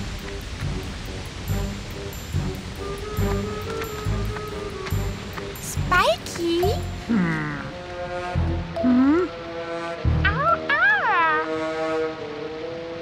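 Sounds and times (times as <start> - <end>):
waterfall rushing: 0.0 - 7.1.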